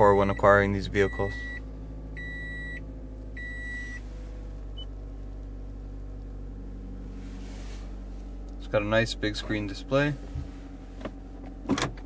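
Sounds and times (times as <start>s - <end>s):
car warning chime beeping: 0.0s - 4.1s, 4.7s - 5.0s
steady low hum: 0.0s - 12.0s.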